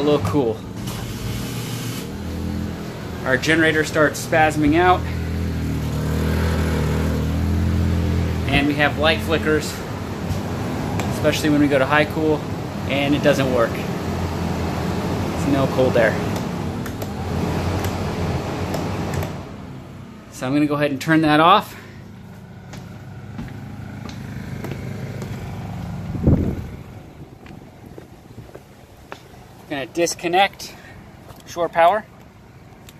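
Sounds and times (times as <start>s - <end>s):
generator surging: 0.0s - 29.2s
air conditioner fan rush: 0.0s - 32.9s.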